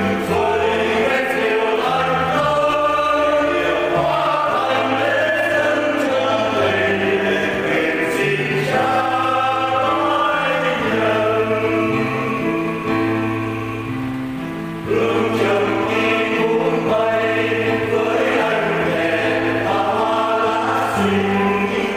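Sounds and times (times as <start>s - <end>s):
choir singing a hymn: 0.0s - 21.9s.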